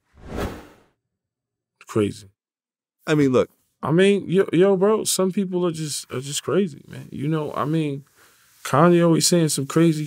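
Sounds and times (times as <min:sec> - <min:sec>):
whoosh transition effect: 0:00.1 - 0:00.8.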